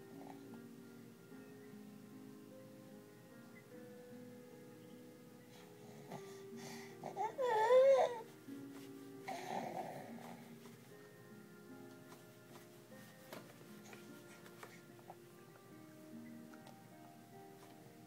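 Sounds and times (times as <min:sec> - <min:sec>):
soft plucked background music: 0:00.0 - 0:18.0.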